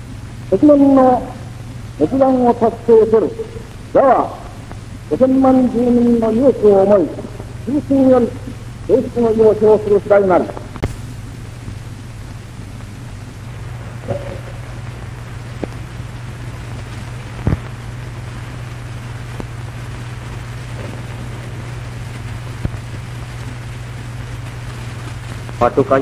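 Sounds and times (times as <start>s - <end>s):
low hum: 0.0s - 25.8s
film hiss: 0.0s - 26.0s
clicks and pops: 10.6s - 11.0s, 17.4s - 17.8s.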